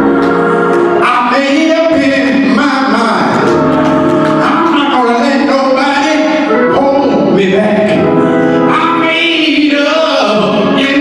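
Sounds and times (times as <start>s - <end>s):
man singing gospel into microphone: 1.0s - 3.6s, 4.4s - 11.0s.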